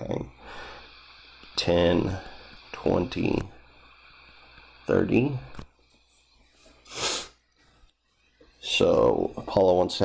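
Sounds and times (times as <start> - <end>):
breath close to microphone: 0.3 - 2.9.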